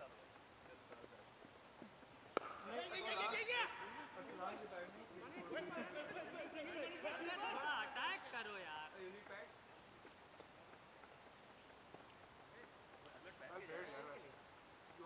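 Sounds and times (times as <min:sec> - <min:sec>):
cricket bat striking ball: 0:02.3 - 0:02.9.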